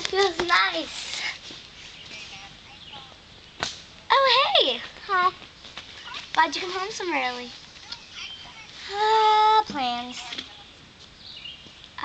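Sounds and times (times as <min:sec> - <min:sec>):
faint outdoor background: 0:00.0 - 0:12.0
sharp slap: 0:03.6 - 0:03.9.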